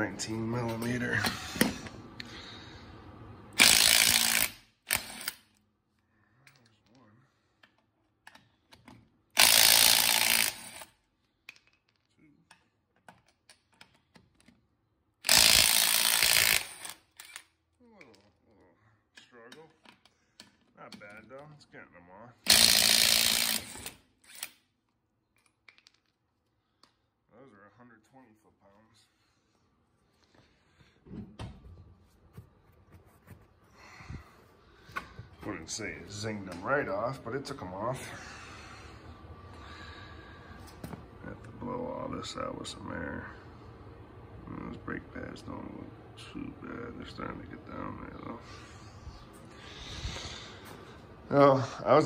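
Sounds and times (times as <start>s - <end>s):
impact wrench hammering: 3.6s - 5.4s, 9.4s - 10.9s, 22.5s - 24.5s.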